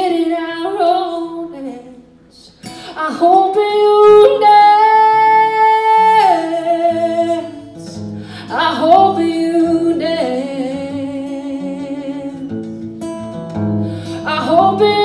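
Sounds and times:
strummed guitar: 0:02.5 - 0:15.0
woman singing long notes: 0:14.2 - 0:15.0.

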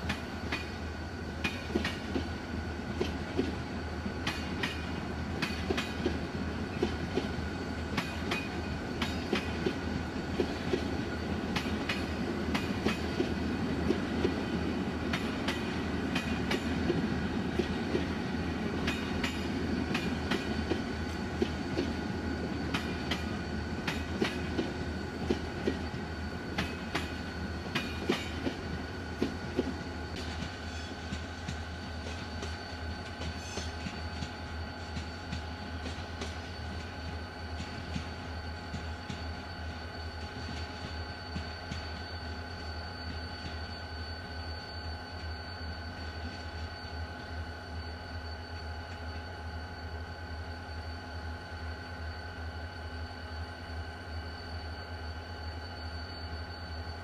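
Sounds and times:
train rumble: 0:00.0 - 0:54.1.

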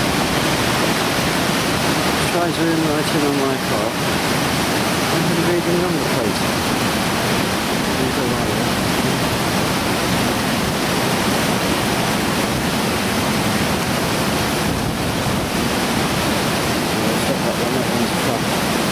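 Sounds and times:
waterfall roaring: 0:00.0 - 0:18.9.

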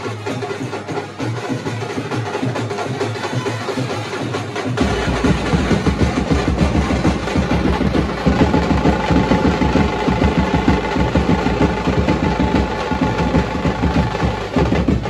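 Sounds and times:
side drums played with sticks: 0:00.0 - 0:15.0
street brass band playing: 0:00.0 - 0:15.0
bass drum beats: 0:04.7 - 0:15.0.

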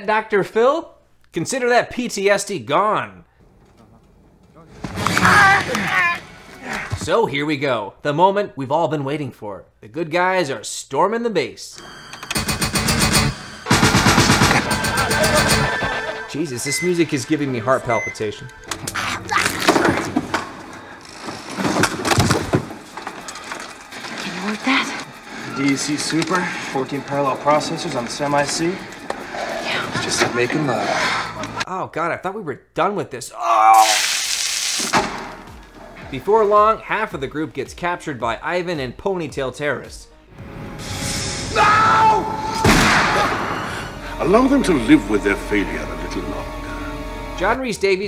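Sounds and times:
action film score with driving percussion: 0:11.8 - 0:31.7, 0:40.3 - 0:47.4
person vomiting: 0:33.4 - 0:34.2.

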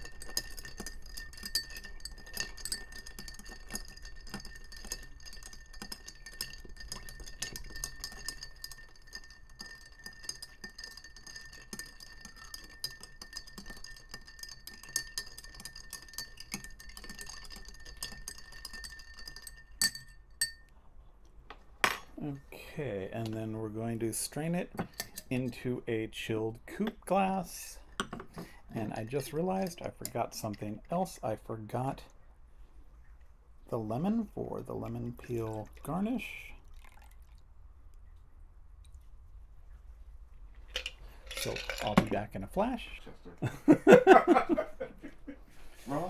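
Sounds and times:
faint glass ringing: 0:00.0 - 0:20.7
spoon stirring ice in glass: 0:00.0 - 0:20.7, 0:24.3 - 0:25.6, 0:26.8 - 0:31.9, 0:34.0 - 0:37.1, 0:40.7 - 0:42.8.

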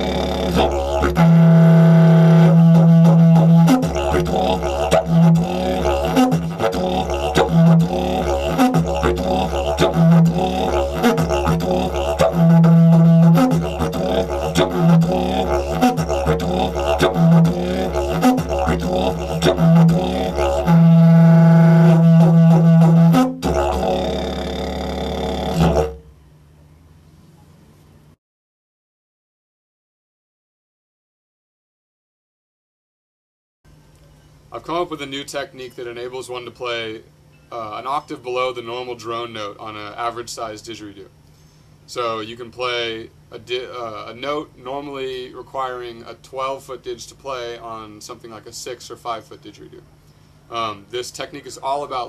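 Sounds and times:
didgeridoo playing rhythmic drones: 0:00.0 - 0:26.1.

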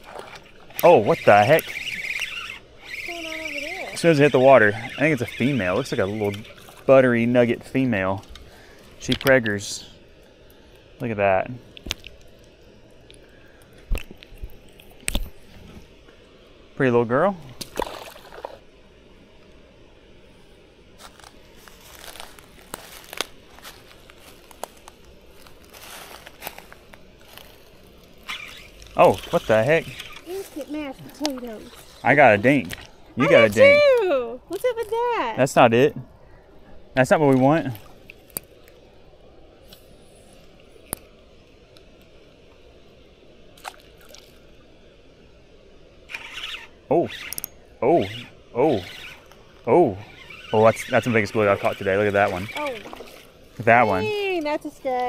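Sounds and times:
small water splash: 0:00.0 - 0:03.1, 0:17.5 - 0:18.6, 0:43.6 - 0:44.5, 0:50.2 - 0:53.7
fishing reel clicks and crunches: 0:00.7 - 0:06.8, 0:28.2 - 0:30.4, 0:46.1 - 0:49.3
man shouting excitedly: 0:33.2 - 0:34.0, 0:53.6 - 0:54.2.

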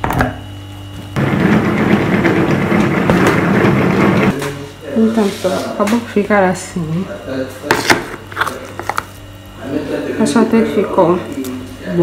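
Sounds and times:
food chopper blades churning: 0:01.2 - 0:04.4.

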